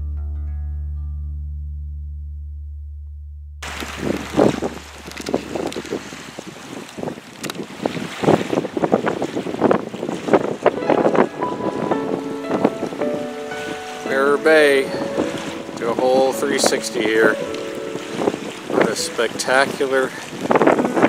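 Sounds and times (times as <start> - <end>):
wind buffeting microphone: 3.6 - 21.0
song note: 10.8 - 19.9.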